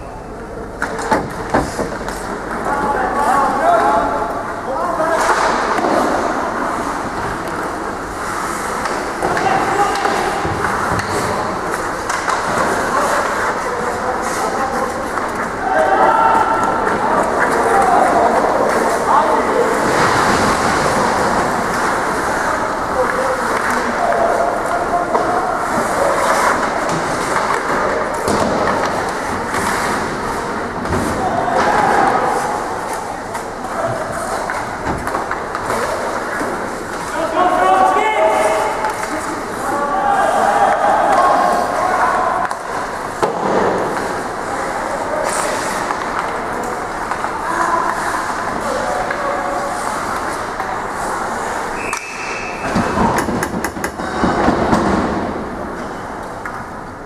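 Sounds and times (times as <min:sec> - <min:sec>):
players shouting: 0:08.8 - 0:11.3, 0:12.0 - 0:29.2, 0:30.9 - 0:33.0, 0:37.1 - 0:46.0.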